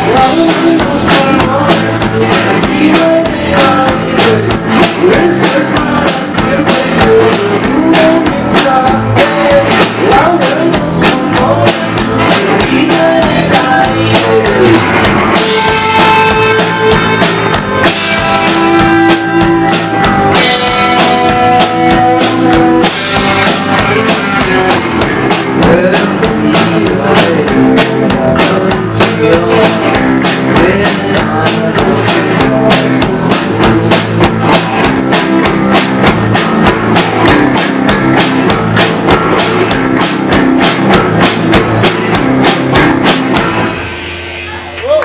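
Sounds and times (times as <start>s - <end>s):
rock band playing: 0.0s - 45.0s.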